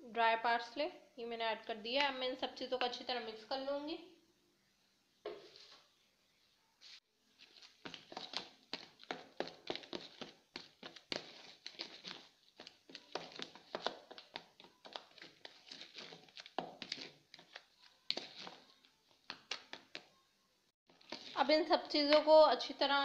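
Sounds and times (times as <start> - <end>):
spoon scraping plastic bowl: 7.4 - 19.9, 20.9 - 21.5.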